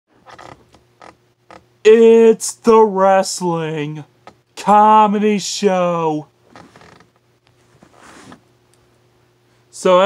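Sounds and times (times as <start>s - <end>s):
man announcing: 1.9s - 6.3s, 9.8s - 10.0s
faint scuffs and creaks: 6.5s - 8.5s.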